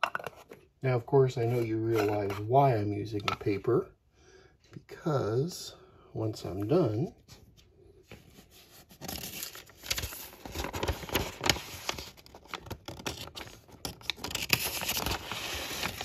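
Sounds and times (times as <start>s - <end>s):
paper crinkling and rustling: 6.5s - 16.0s.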